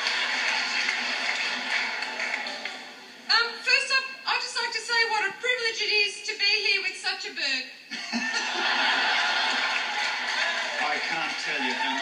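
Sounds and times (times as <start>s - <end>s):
audience laughter through tv speaker: 7.9s - 12.0s.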